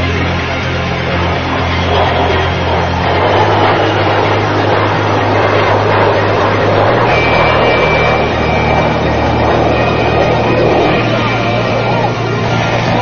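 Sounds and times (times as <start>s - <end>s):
jet engines roaring overhead: 0.0s - 13.0s.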